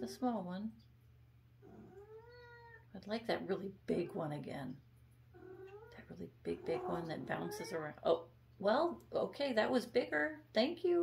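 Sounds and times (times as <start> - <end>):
cat meowing: 1.6 - 2.9, 5.4 - 6.0.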